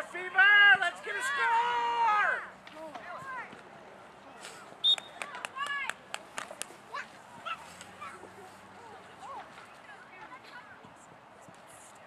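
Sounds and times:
voices shouting: 0:00.3 - 0:03.5.

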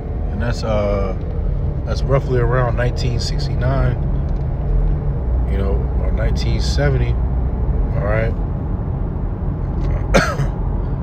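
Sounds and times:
low background rumble: 0:00.0 - 0:11.0
man coughing: 0:09.8 - 0:10.6.

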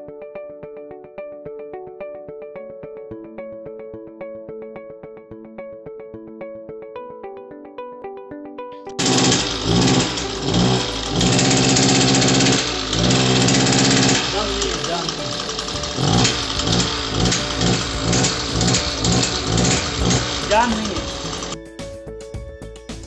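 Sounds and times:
brush cutter engine revving: 0:09.0 - 0:21.6.

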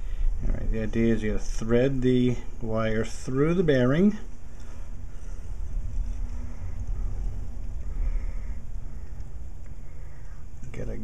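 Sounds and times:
faint hum: 0:00.0 - 0:11.0
steady low rumble: 0:00.0 - 0:11.0.

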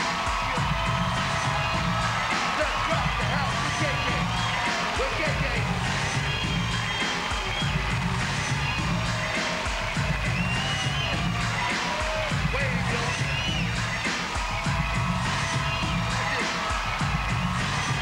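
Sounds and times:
crowd cheering and shouting: 0:00.0 - 0:18.0
hip-hop beat over pa: 0:00.0 - 0:18.0.

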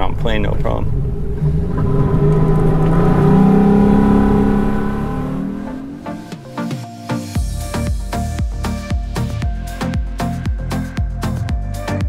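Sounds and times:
outboard engine accelerating: 0:00.0 - 0:07.6
music with a beat: 0:06.1 - 0:12.0.

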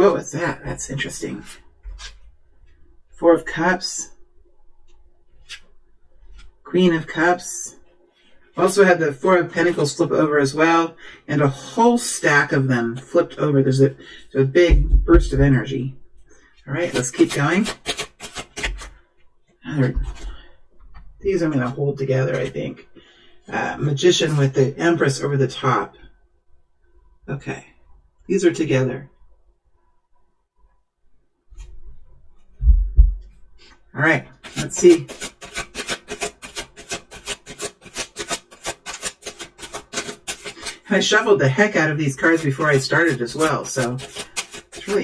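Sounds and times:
cards being shuffled: 0:01.3 - 0:02.3, 0:05.3 - 0:06.6, 0:16.8 - 0:19.0, 0:34.4 - 0:41.1, 0:42.1 - 0:45.0
cards snapping and clicking: 0:17.6 - 0:19.0, 0:35.1 - 0:40.8.

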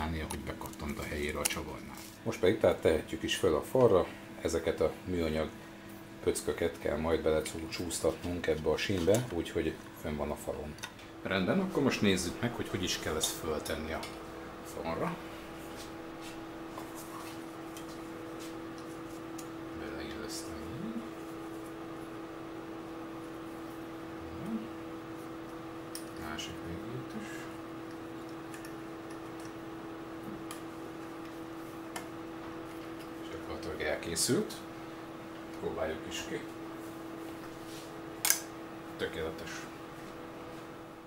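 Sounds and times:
electrical hum: 0:00.0 - 0:41.0
person murmuring: 0:20.4 - 0:21.2, 0:24.2 - 0:24.8.

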